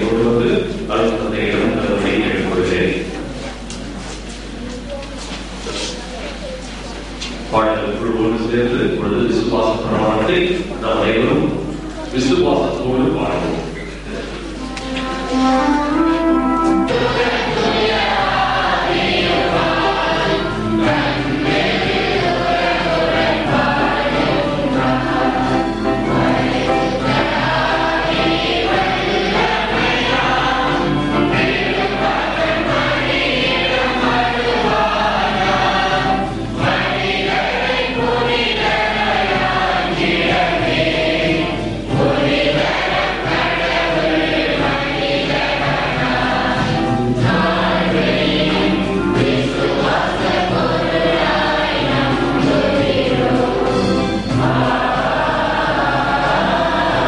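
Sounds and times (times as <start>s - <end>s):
choir singing a hymn: 0.0s - 3.1s, 7.5s - 57.0s.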